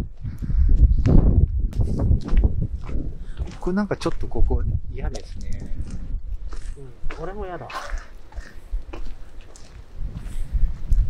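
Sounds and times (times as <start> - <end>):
wind buffeting microphone: 0.0 - 11.0
footsteps on farm ground: 0.1 - 11.0.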